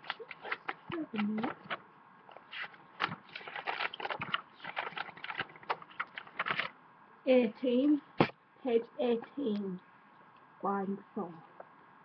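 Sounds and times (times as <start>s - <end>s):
book pages rustling: 0.0s - 6.7s.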